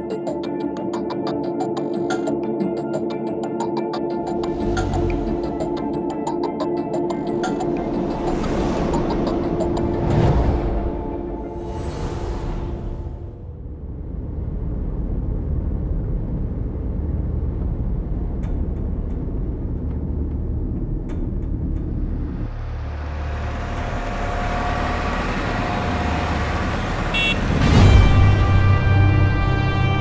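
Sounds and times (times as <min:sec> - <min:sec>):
music: 0:00.0 - 0:30.0.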